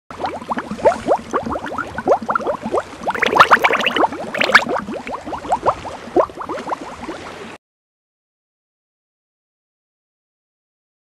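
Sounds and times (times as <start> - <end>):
bubbling water blips: 0.1 - 7.6.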